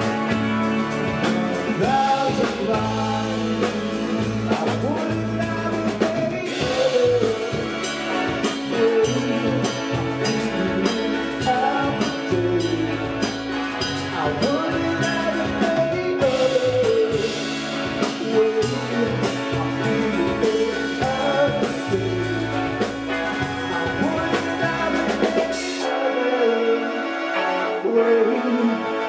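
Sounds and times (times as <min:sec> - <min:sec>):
rock band playing: 0:00.0 - 0:29.0
saxophone lead melody: 0:00.0 - 0:29.0.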